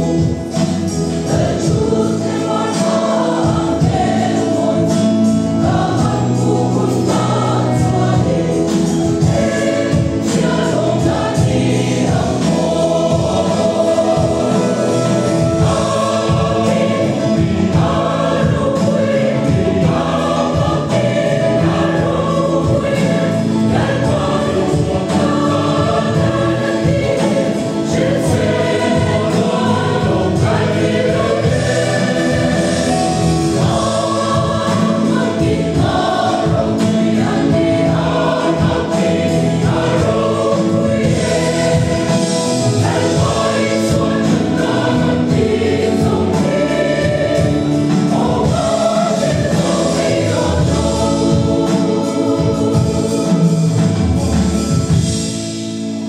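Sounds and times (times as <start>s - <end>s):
mixed choir singing a hymn: 0.0s - 56.0s.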